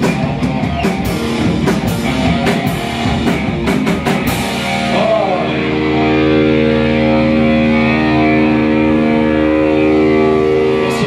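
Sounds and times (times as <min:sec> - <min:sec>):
distorted electric guitar chord: 0:00.0 - 0:11.0.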